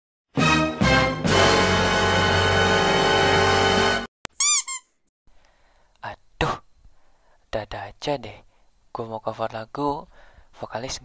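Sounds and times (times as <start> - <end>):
high-pitched squeaks: 4.3 - 5.0.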